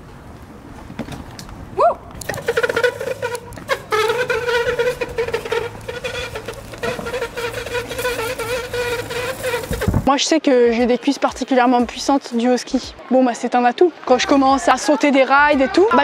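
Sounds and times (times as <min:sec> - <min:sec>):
skate brake whine: 0:02.2 - 0:10.1
skate wheels rattling on paving: 0:02.2 - 0:10.1.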